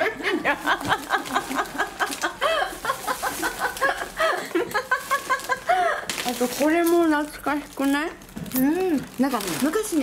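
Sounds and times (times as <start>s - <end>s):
woman laughing: 0.0s - 6.1s.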